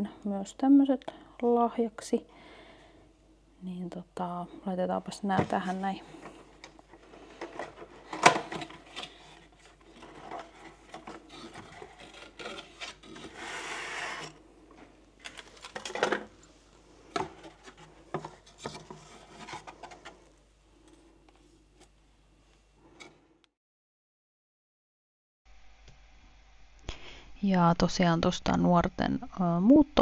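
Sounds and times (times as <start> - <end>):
cardboard rubbing and scraping: 7.0 - 14.4, 17.3 - 20.2.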